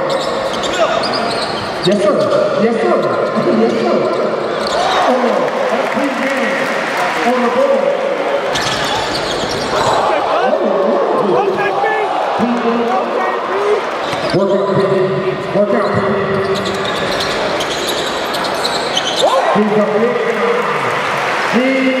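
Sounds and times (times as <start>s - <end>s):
sneaker squeaks: 0.0s - 5.0s, 8.5s - 10.0s, 14.0s - 15.0s, 15.8s - 19.4s.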